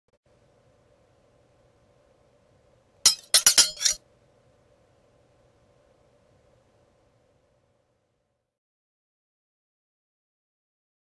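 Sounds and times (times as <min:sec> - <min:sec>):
sharp ringing clinks: 0:03.1 - 0:04.0.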